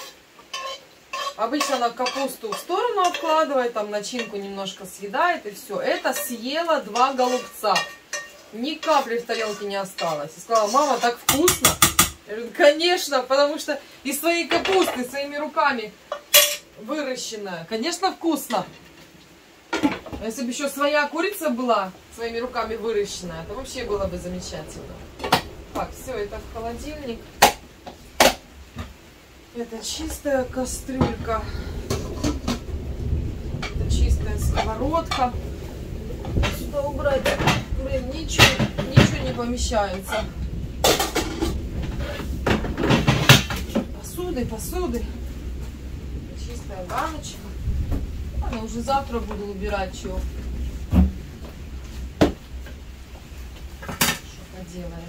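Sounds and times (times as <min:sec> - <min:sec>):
pots and dishes clanking: 0:00.0 - 0:04.8, 0:05.8 - 0:12.2, 0:14.5 - 0:15.1, 0:16.0 - 0:16.7, 0:19.7 - 0:20.3, 0:25.2 - 0:26.2, 0:30.9 - 0:32.6, 0:36.2 - 0:43.9
pots and lids knocking: 0:07.0 - 0:12.2.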